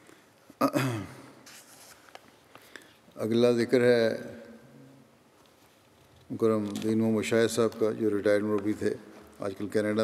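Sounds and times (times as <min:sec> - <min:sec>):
paper rustling: 0:01.4 - 0:02.7.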